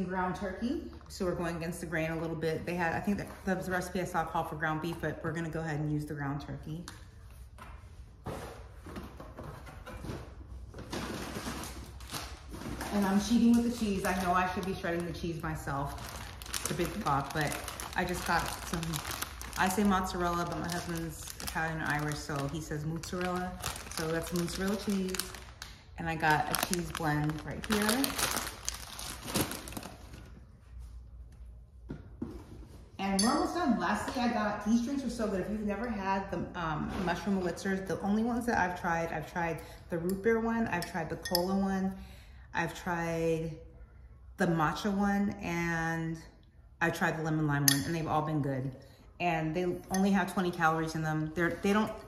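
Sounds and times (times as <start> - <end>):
paper bag rustling and crinkling: 10.8 - 30.4.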